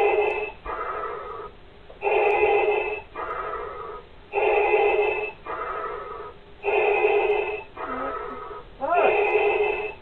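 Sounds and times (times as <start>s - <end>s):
respirator breathing hiss: 0.0s - 10.0s.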